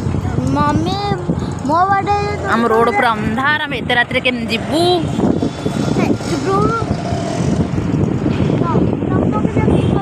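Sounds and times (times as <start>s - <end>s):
vehicle moving along street: 0.0s - 10.0s.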